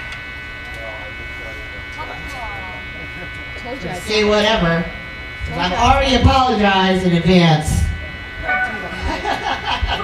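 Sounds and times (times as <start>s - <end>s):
amplifier electrical buzz: 0.0s - 10.0s.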